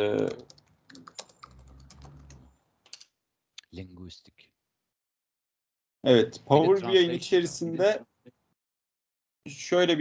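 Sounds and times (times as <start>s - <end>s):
computer keyboard typing: 0.2s - 3.0s.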